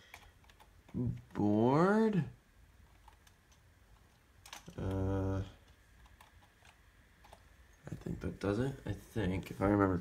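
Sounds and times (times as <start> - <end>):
computer keyboard keystrokes: 0.0 - 1.2, 2.9 - 5.0, 5.6 - 7.4.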